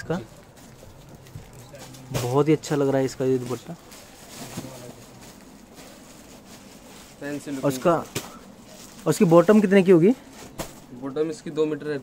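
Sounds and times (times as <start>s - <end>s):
street traffic: 0.0s - 11.9s.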